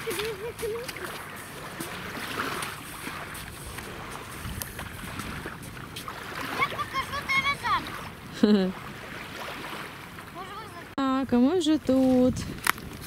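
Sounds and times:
wind on microphone: 0.0s - 8.4s, 11.6s - 13.0s
small waves lapping: 0.0s - 13.0s.

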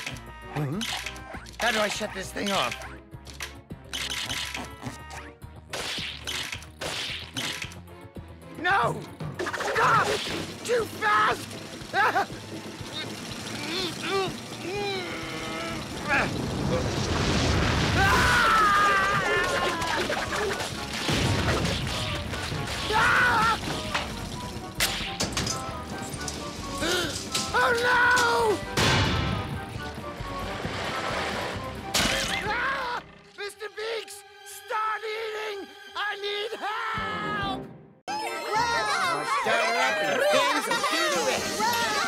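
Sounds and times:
background music: 0.0s - 16.7s, 17.3s - 42.0s
cartoon shooting sound effects: 3.9s - 7.8s, 9.4s - 12.3s, 24.8s - 25.4s
sharp crack: 16.0s - 25.7s
cartoon crash smashing and thudding: 16.1s - 23.9s.

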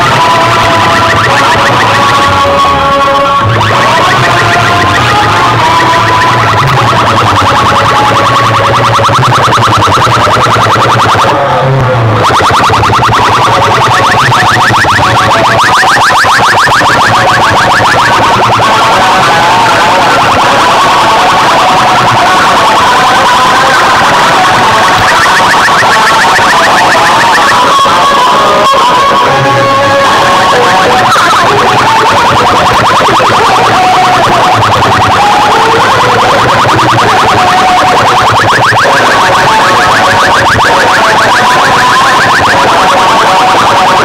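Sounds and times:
fast repeating electronic effect: 0.0s - 29.0s, 29.8s - 44.0s
distorted dance music: 0.0s - 44.0s.

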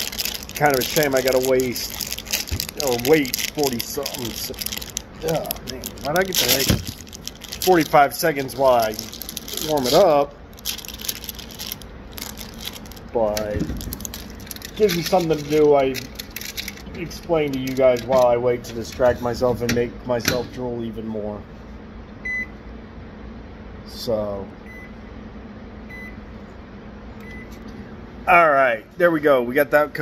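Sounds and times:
microwave low hum: 0.0s - 30.0s
microwave keypad beep: 22.2s - 22.5s, 27.2s - 27.5s.

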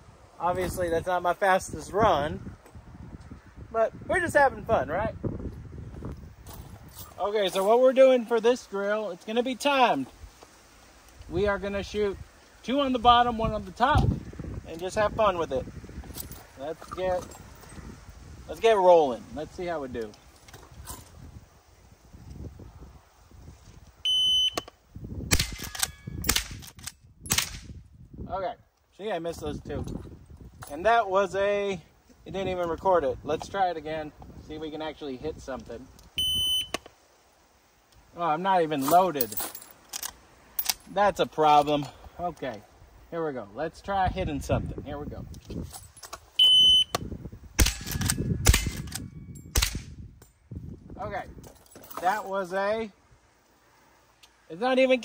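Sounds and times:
shot timer beep: 24.1s - 24.7s, 36.2s - 36.8s, 46.4s - 47.0s
rifle shots: 25.3s - 26.7s, 27.3s - 27.7s, 47.6s - 48.9s, 49.5s - 50.0s.

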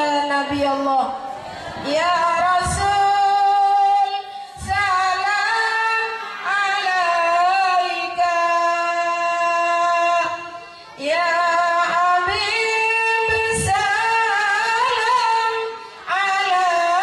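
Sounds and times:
woman singing into microphone: 0.0s - 1.2s, 1.8s - 17.0s.

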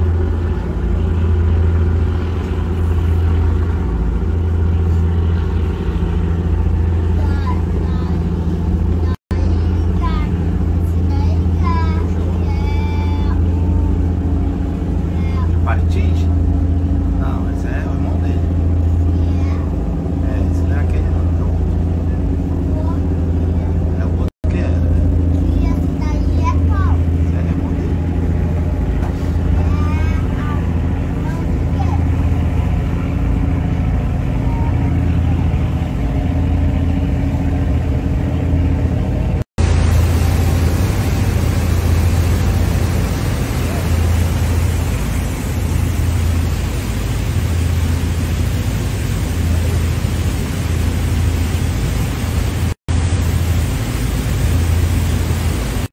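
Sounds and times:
riverboat engine drone: 0.0s - 55.9s
rushing water: 0.0s - 55.9s
wind: 0.0s - 55.9s.

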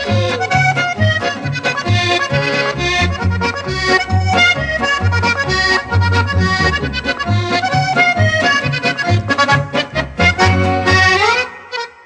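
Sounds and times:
steady bass beat: 0.0s - 11.2s
accordion: 0.0s - 12.0s.

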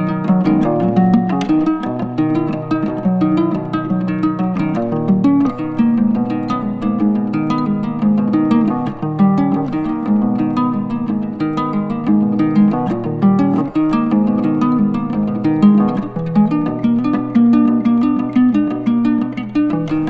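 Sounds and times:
picked guitar notes: 0.0s - 20.0s.

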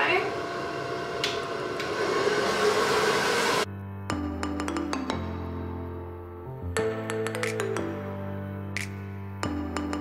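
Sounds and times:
hair dryer blowing: 0.0s - 3.7s.

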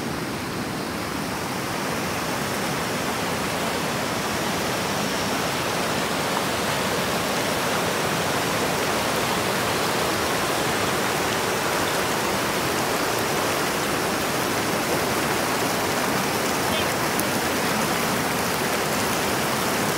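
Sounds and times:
river rushing over stones: 0.0s - 19.9s.

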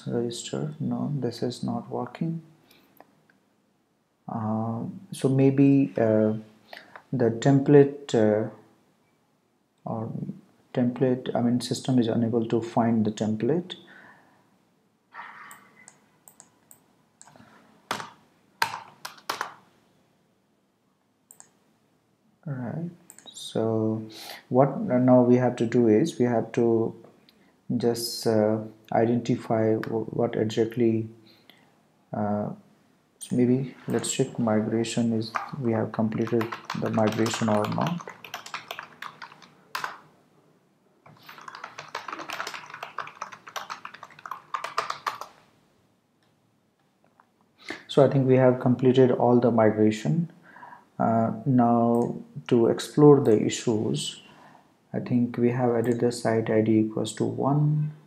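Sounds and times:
typing on computer keyboard: 15.5s - 19.6s, 35.3s - 40.0s, 41.1s - 45.4s
computer keyboard key taps: 17.9s - 19.6s, 41.2s - 45.3s.

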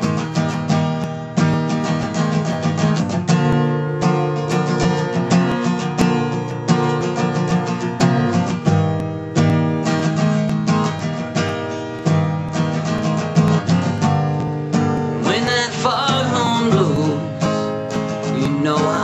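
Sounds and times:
acoustic guitar strumming: 0.0s - 19.0s.

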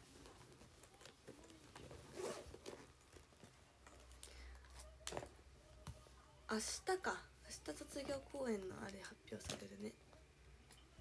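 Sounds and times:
rustling handling noise: 0.0s - 6.3s.

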